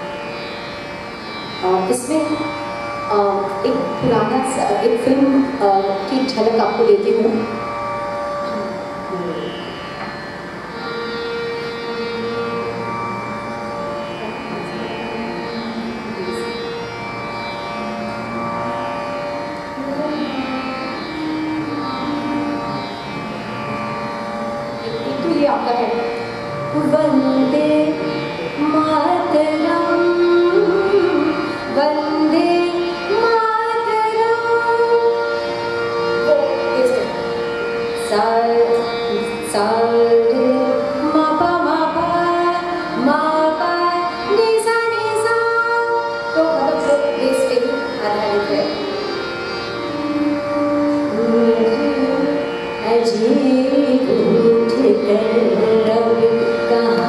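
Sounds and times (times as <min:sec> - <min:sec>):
harmonium sustained notes: 0:00.0 - 0:57.0
woman singing classical vocals: 0:26.8 - 0:35.5, 0:38.0 - 0:49.0, 0:51.1 - 0:57.0.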